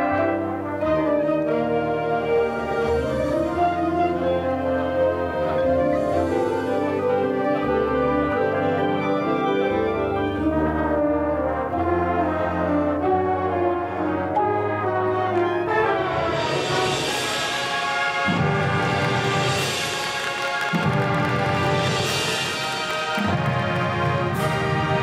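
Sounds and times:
marching band brass chords: 0.0s - 25.0s.

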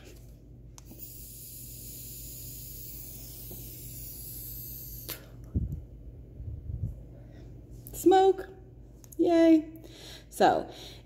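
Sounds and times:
vape pen air hissing: 0.8s - 5.3s
breathing out vapour puffs: 0.9s - 5.3s.

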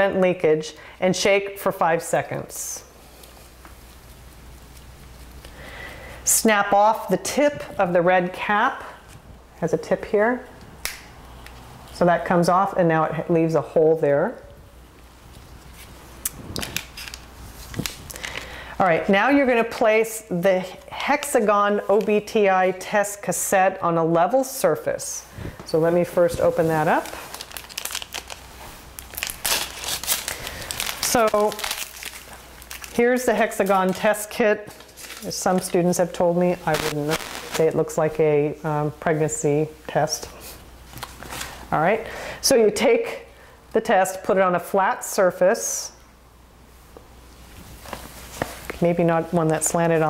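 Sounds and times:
packaging pouch crinkling: 16.2s - 18.6s, 26.7s - 34.1s, 34.7s - 37.6s.

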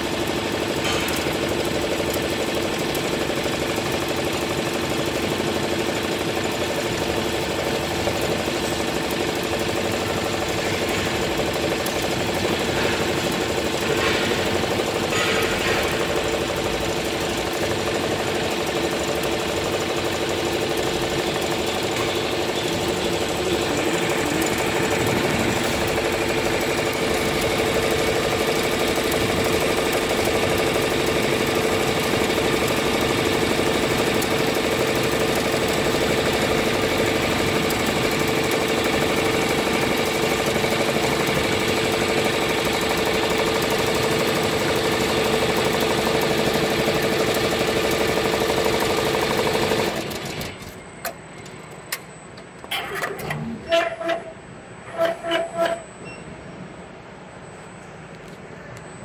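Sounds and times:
embroidery machine stitching: 0.0s - 50.8s.

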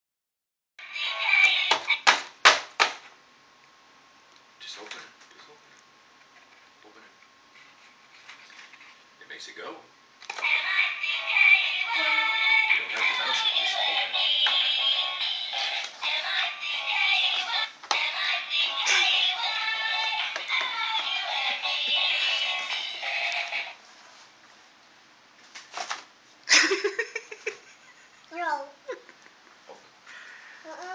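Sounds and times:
tinny greeting card song: 0.8s - 2.2s, 10.3s - 23.8s.

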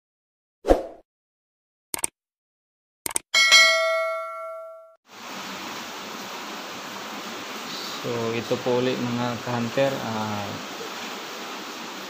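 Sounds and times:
bright bell ding: 3.4s - 5.0s
faint hiss: 5.1s - 12.0s.

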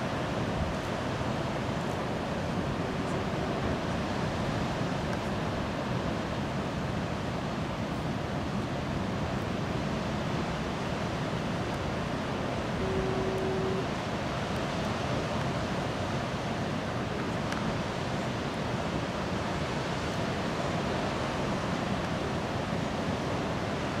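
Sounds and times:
ocean surf breaking: 0.0s - 24.0s
wind: 0.0s - 24.0s
steady tone: 12.7s - 14.0s.

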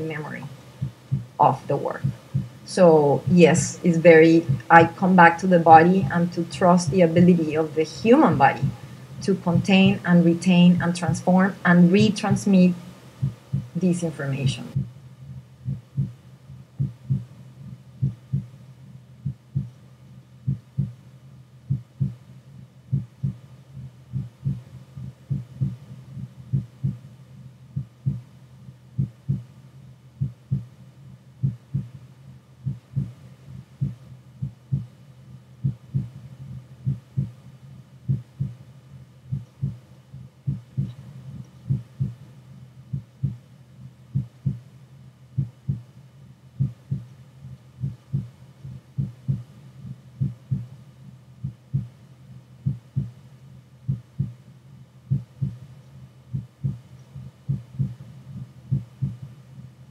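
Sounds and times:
heartbeat thumps: 0.2s - 11.2s, 11.9s - 13.9s, 14.5s - 18.6s, 19.2s - 19.8s, 20.4s - 21.0s, 21.7s - 22.2s, 22.9s - 27.1s, 27.7s - 28.3s, 28.9s - 29.5s, 30.2s - 30.7s, 31.4s - 32.0s, 32.6s - 35.0s, 35.6s - 37.4s, 38.0s - 38.6s, 39.3s - 43.4s, 44.1s - 44.7s, 45.3s - 45.9s, 46.6s - 50.8s, 51.4s - 52.0s, 52.6s - 53.2s, 53.8s - 54.4s, 55.1s - 55.7s, 56.3s - 59.7s.

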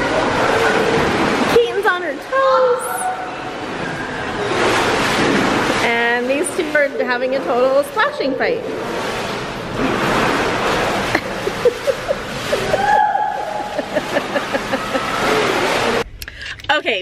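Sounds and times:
pool water splashing: 0.0s - 16.1s.

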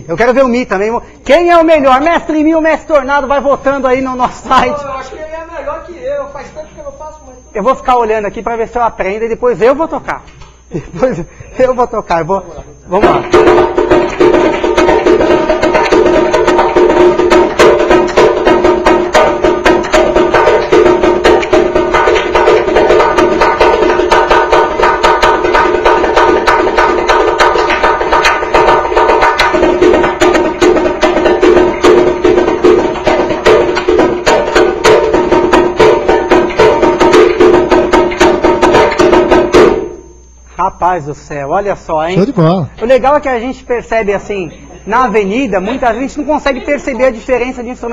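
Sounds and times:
repinique drum played with stick and hand: 13.0s - 40.0s.

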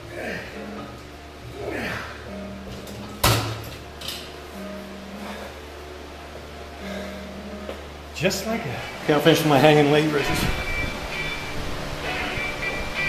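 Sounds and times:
steady low hum: 0.0s - 13.0s
loud metal clunk: 2.8s - 4.3s.

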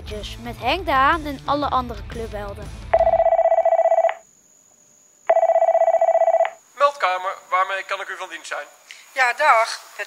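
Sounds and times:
telephone ringing: 3.0s - 4.2s, 5.3s - 6.6s.

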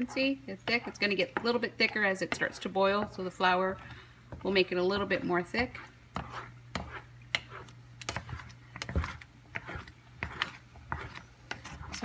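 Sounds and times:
spatula scraping a pan: 0.0s - 12.0s.

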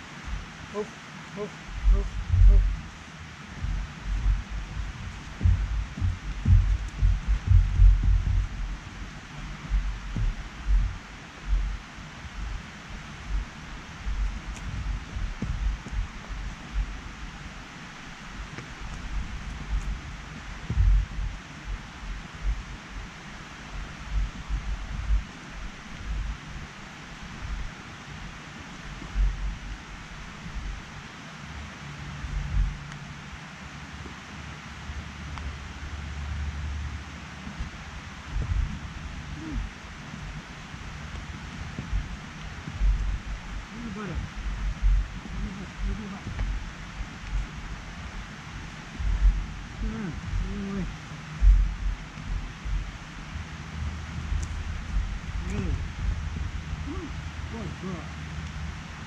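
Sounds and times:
steady outdoor hiss: 0.0s - 59.0s
wind buffeting microphone: 1.6s - 30.9s, 35.9s - 57.5s.

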